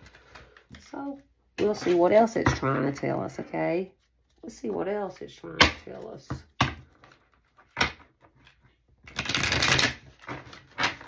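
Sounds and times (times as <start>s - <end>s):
cards being shuffled: 6.9s - 11.0s.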